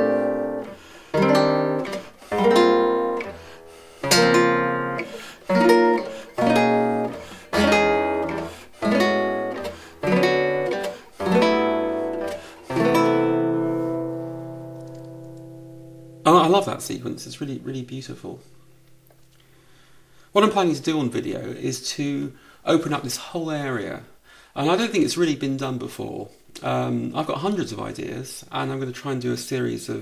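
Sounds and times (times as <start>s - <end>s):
nylon-string guitar chords: 0.0s - 16.9s.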